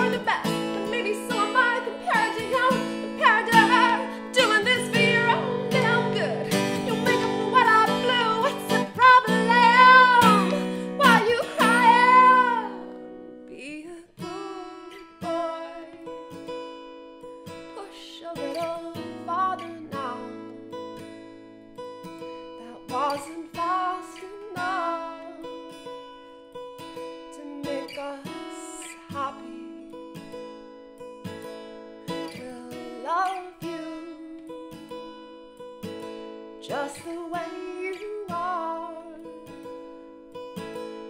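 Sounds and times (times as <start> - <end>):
acoustic guitar: 0.0 - 41.0.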